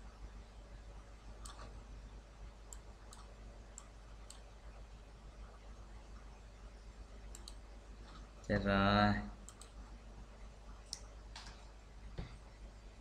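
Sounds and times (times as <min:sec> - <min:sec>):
computer mouse clicks: 0:01.4 - 0:01.8, 0:02.7 - 0:04.5, 0:07.3 - 0:08.3, 0:09.4 - 0:09.8, 0:10.8 - 0:11.7.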